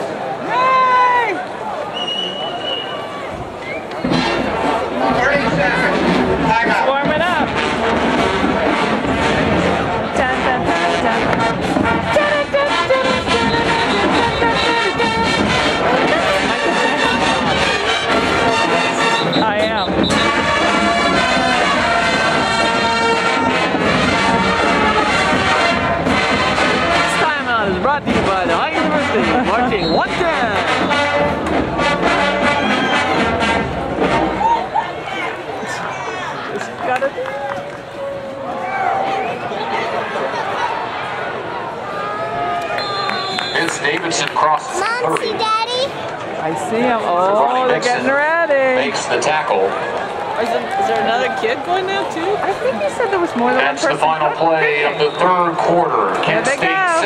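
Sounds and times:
crowd chatter: 0:00.0 - 0:57.0
marching band playing: 0:03.8 - 0:35.2, 0:46.6 - 0:57.0.

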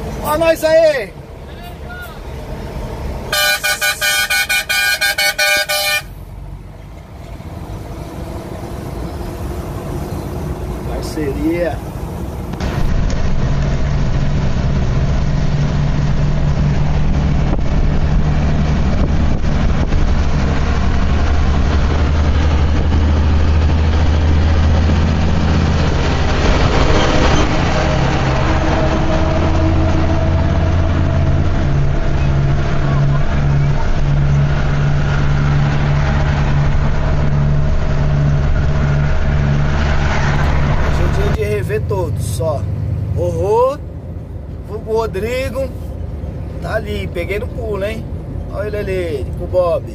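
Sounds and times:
road noise: 0:00.0 - 0:49.9
truck diesel engine droning: 0:00.0 - 0:49.9.

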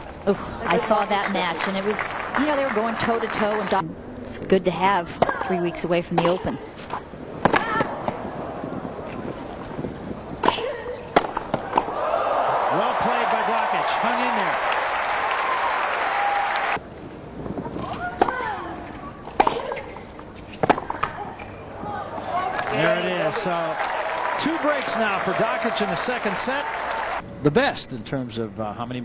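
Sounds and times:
crowd applauding and cheering: 0:00.8 - 0:03.8, 0:11.9 - 0:16.8, 0:22.4 - 0:27.2
tennis ball struck by rackets: 0:10.4 - 0:11.9
shouts: 0:11.9 - 0:16.8.

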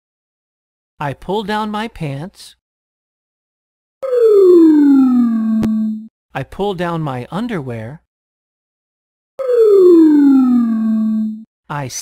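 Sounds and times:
descending cartoon whistle tone: 0:04.0 - 0:06.0, 0:09.4 - 0:11.4.

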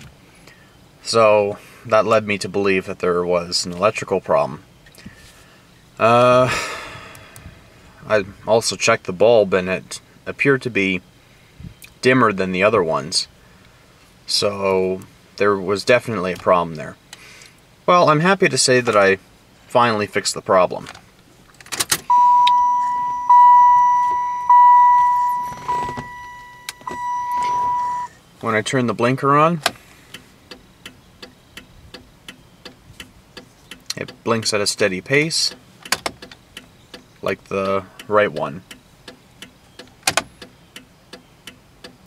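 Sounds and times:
car dashboard warning chime: 0:22.1 - 0:28.1
turn-signal flasher ticking: 0:22.1 - 0:28.1.

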